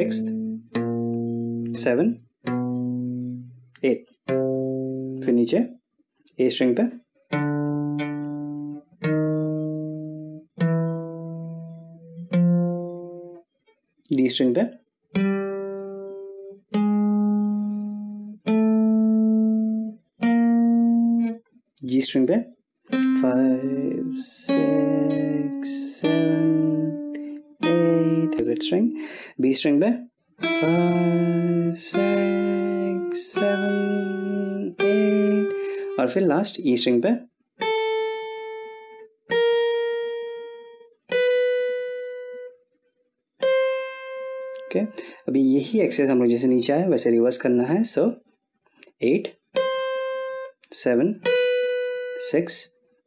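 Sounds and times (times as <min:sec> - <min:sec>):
acoustic guitar notes plucked: 0:00.0 - 0:42.7, 0:43.4 - 0:52.8.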